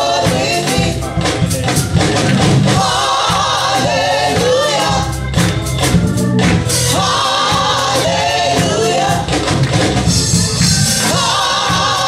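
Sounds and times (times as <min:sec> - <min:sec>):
choir singing gospel: 0:00.0 - 0:12.0
instrumental backing: 0:00.0 - 0:12.0.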